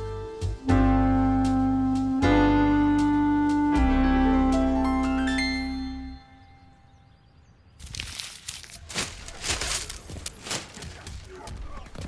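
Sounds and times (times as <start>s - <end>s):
plucked string notes: 0.0s - 6.7s
rustling and crunching: 7.8s - 12.0s.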